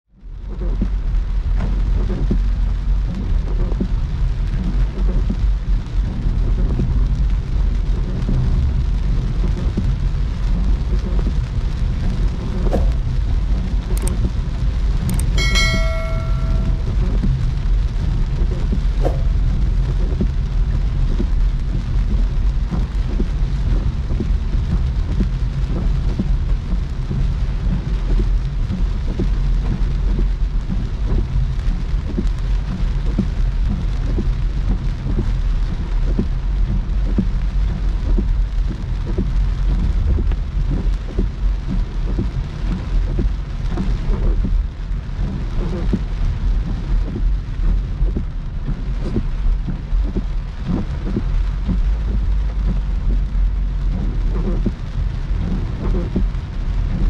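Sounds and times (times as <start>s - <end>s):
heavy rain on car windshield: 0.1s - 57.0s
tyres rumbling on wet road: 0.1s - 57.0s
short bright chime: 15.2s - 17.0s.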